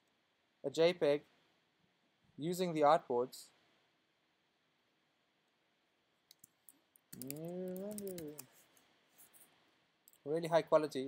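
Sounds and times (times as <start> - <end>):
mouse and keyboard clicks: 6.3 - 8.5
person humming: 7.2 - 8.5.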